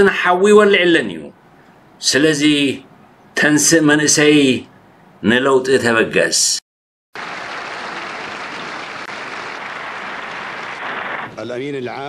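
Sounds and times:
crowd applauding: 7.2 - 11.3.

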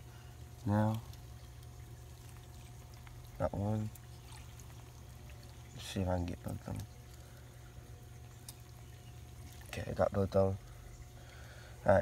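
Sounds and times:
water trickling: 0.0 - 12.0.

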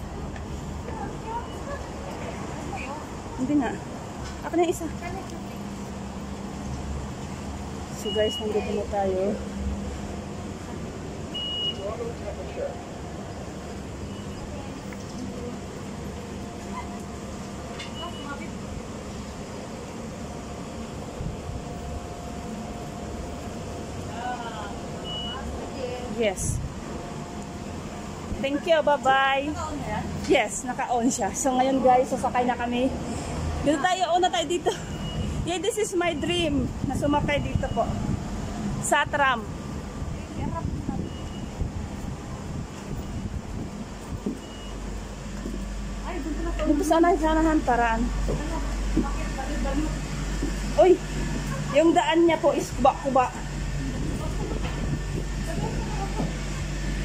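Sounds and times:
low hum inside tram car: 0.0 - 57.0
faint high beep: 8.0 - 8.8, 11.3 - 12.0, 14.0 - 14.6, 17.8 - 18.4, 25.0 - 25.5, 34.9 - 35.4, 37.3 - 38.0, 41.0 - 41.6, 44.4 - 44.8
short high beeps: 11.3 - 11.9, 25.0 - 25.5, 44.4 - 44.8.

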